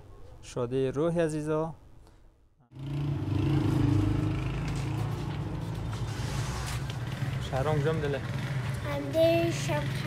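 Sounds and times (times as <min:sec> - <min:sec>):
background noise: 0:00.0 - 0:10.0.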